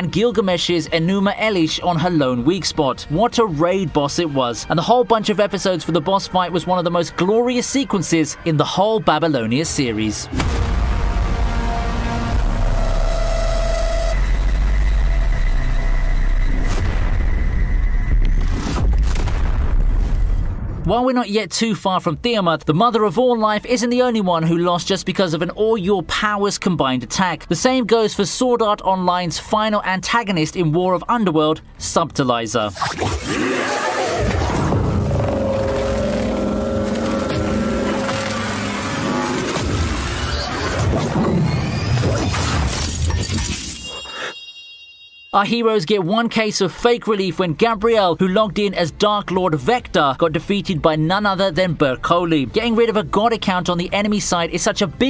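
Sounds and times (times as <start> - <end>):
dramatic orchestral music: 10.2 - 12.9
low rumbling drone: 10.3 - 20.8, 34.1 - 40.2
sharp hits: 10.3 - 20.8
sustained tones: 10.7 - 18.4, 34.3 - 40.8
low explosion rumble: 14.2 - 20.9.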